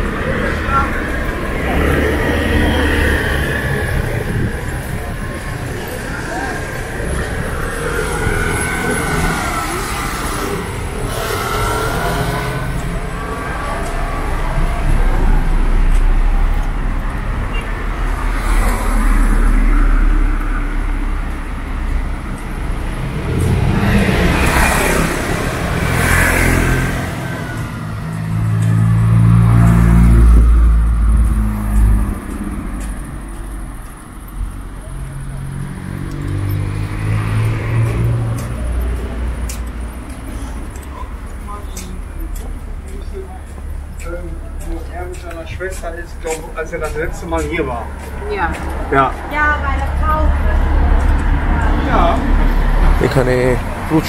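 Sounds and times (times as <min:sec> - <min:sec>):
cars and scooters driving past: 0:00.0 - 0:54.0.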